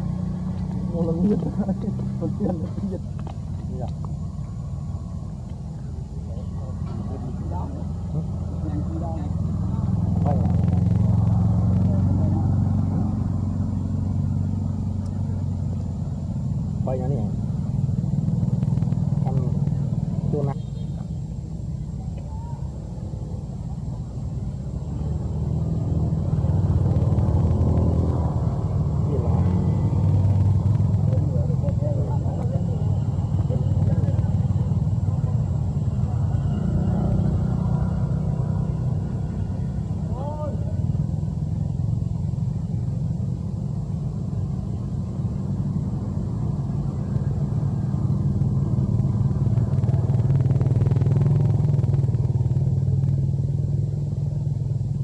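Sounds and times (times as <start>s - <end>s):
passing traffic engine rumble: 0.0s - 55.0s
indistinct voices: 28.0s - 41.0s.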